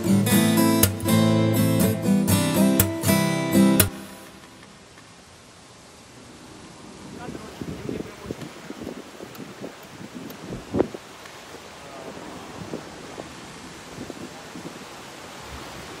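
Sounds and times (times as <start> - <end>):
small waves washing onto shore: 0.0 - 16.0
wind buffeting microphone: 6.9 - 16.0.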